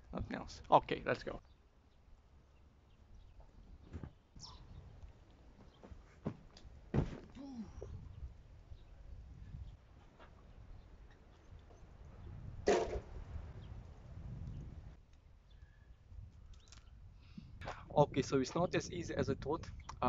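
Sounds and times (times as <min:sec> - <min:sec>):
body thumping on mattress: 0:05.8 - 0:07.4
wind rumble on microphone: 0:07.5 - 0:20.0.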